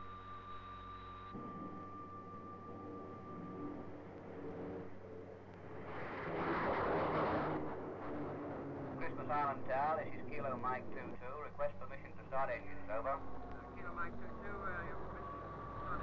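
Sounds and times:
jet aircraft taking off: 3.1 - 16.0.

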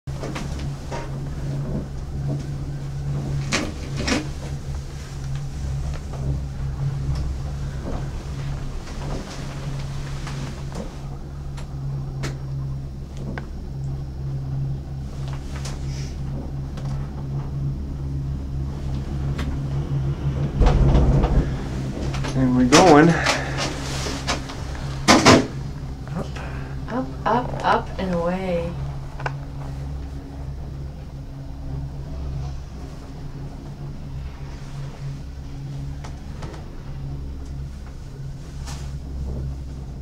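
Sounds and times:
gondola lift machinery drone: 0.1 - 40.0
loud low rumble: 0.1 - 40.0
knocks and clunks: 20.4 - 25.6.

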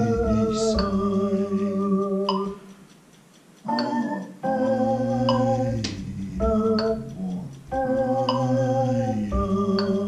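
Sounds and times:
synthesizer sustained chords: 0.0 - 2.6, 3.7 - 10.0.

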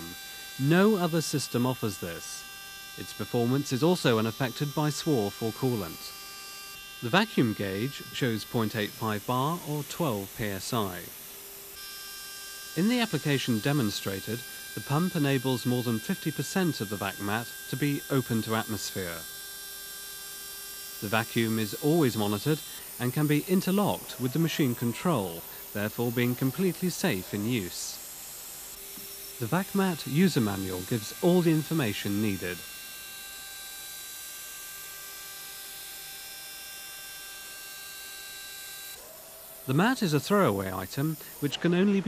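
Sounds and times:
thin whine tones: 0.0 - 42.0.

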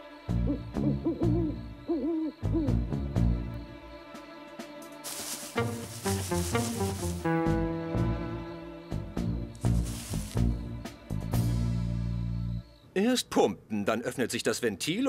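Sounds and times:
low pulsing background music: 0.0 - 12.8
owl hooting: 0.4 - 3.3.

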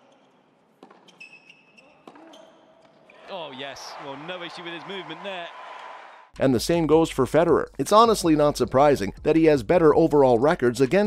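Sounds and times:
shoe squeak on court: 0.0 - 3.2.

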